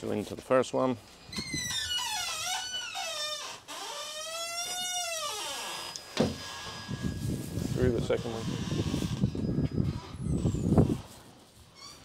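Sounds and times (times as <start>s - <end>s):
metal door hinges squealing: 1.3s - 12.0s.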